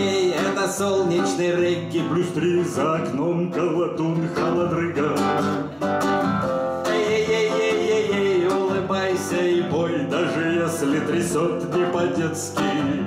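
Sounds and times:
man singing: 0:00.0 - 0:13.0
strummed acoustic guitar: 0:00.0 - 0:13.0.

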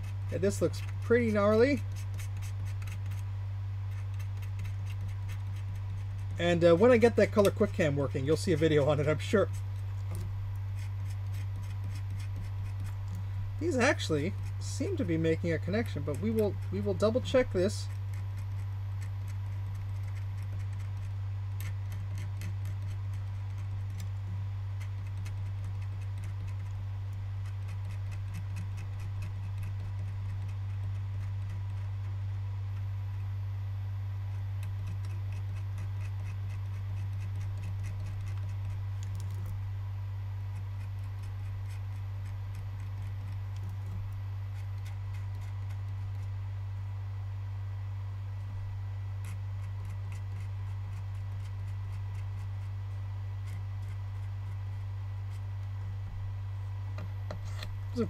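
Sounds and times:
tool tip scratching circuit board: 0:00.0 - 0:03.3, 0:03.9 - 0:24.2, 0:24.8 - 0:26.8, 0:27.4 - 0:32.2, 0:34.3 - 0:39.6, 0:40.5 - 0:46.3, 0:49.2 - 0:52.8, 0:57.0 - 0:58.0
steady low hum: 0:00.0 - 0:58.0.

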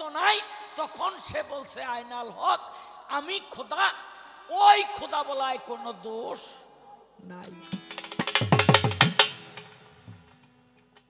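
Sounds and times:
drum strokes: 0:07.5 - 0:10.4.

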